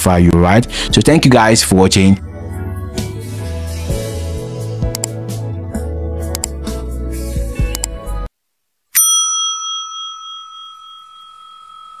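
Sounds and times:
music: 0.0s - 8.3s
notification bell ding: 9.0s - 12.0s.

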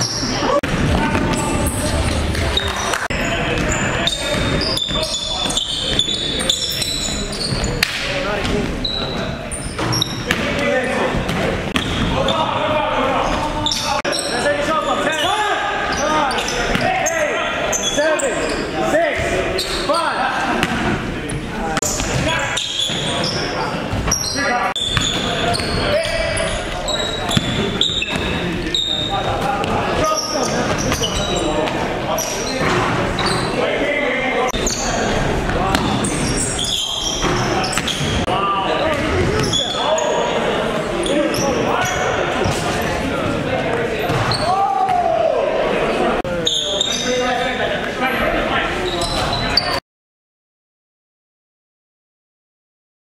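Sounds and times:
players' voices echoing: 0.0s - 49.8s.

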